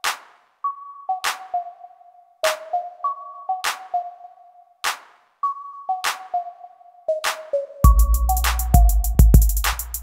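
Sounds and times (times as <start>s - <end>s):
hand clap on backbeat: 0.0s - 0.6s, 1.2s - 1.6s, 3.6s - 4.0s, 4.8s - 5.2s, 6.0s - 6.4s.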